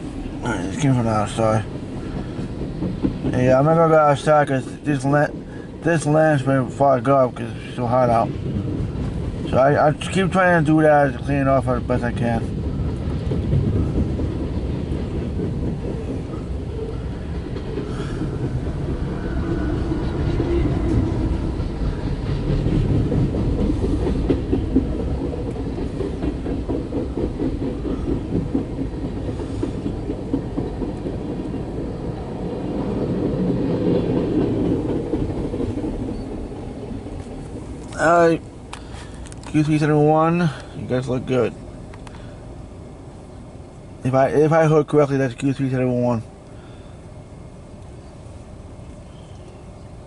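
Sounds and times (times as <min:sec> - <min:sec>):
train wheels rumbling on rail: 0:00.0 - 0:50.0
wheels clicking over rail joints: 0:00.4 - 0:41.1.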